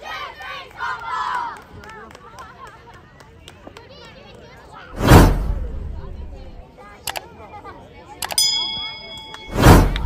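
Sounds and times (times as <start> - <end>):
bell ding: 8.3 - 9.6.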